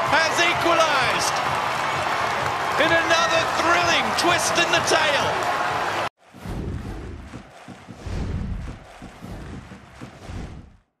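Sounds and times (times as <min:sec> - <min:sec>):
deep bass hits: 0:06.4 - 0:10.8.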